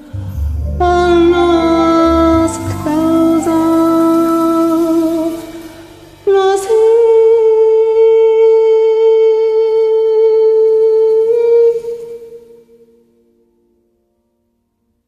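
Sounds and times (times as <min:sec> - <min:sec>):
woman singing long note: 0:00.0 - 0:12.8.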